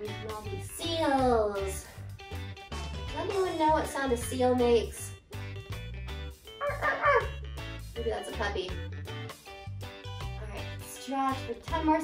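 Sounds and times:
background music: 0.0s - 12.0s
woman imitating seal bark: 6.6s - 7.4s.

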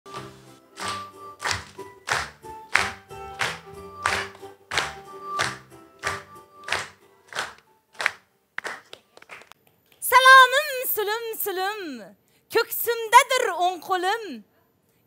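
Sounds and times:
upbeat music: 0.1s - 8.2s
audience clapping along: 0.1s - 9.6s.

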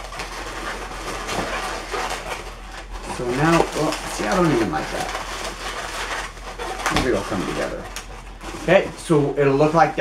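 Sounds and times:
balloons rubbing and squeaking: 0.0s - 10.0s.

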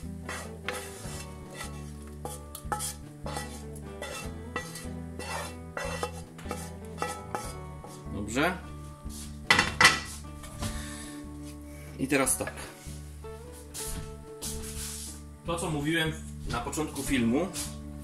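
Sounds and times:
wooden spatula scraping a frying pan: 0.0s - 8.2s, 9.1s - 10.3s.

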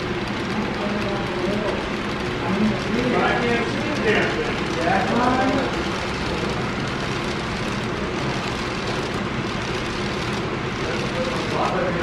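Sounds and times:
model train rolling on track: 0.0s - 12.0s.

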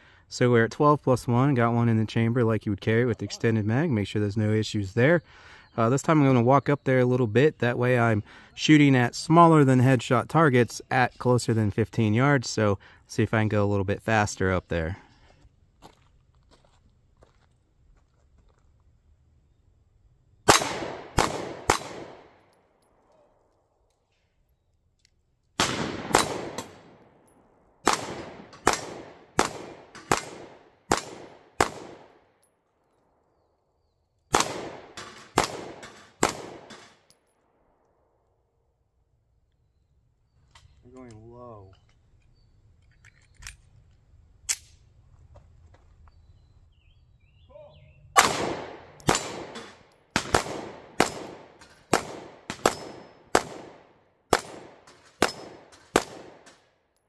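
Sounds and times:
pistol shots hitting steel: 25.6s - 32.2s, 34.3s - 37.2s, 48.2s - 56.7s.

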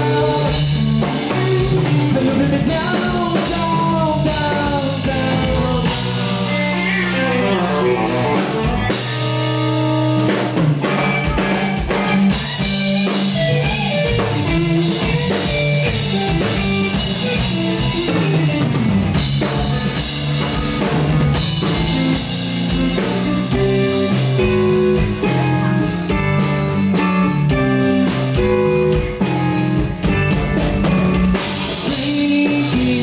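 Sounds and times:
drum kit: 0.0s - 33.0s
electric bass: 0.0s - 33.0s
electric guitar: 0.0s - 33.0s.

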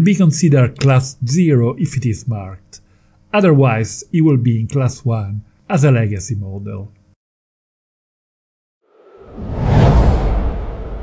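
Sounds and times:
deep whoosh: 8.9s - 11.0s.

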